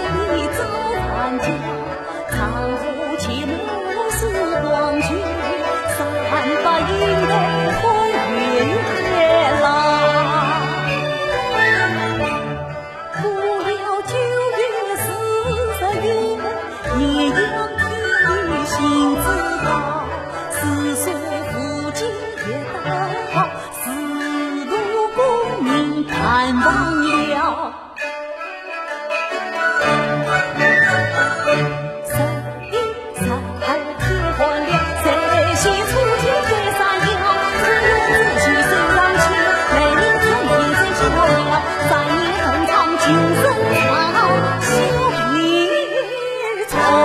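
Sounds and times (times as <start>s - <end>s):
woman singing opera: 0.0s - 11.9s, 13.1s - 27.8s, 32.0s - 47.0s
traditional instrumental accompaniment: 0.0s - 47.0s.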